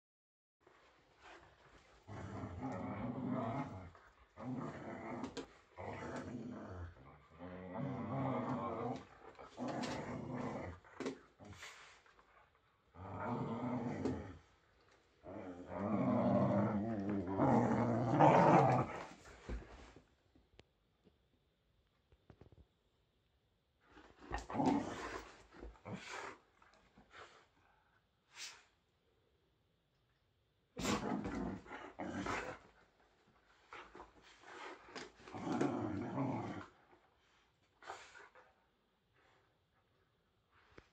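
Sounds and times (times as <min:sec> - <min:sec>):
dogs growling in play: 0:00.6 - 0:20.0, 0:23.9 - 0:27.6, 0:30.8 - 0:38.6.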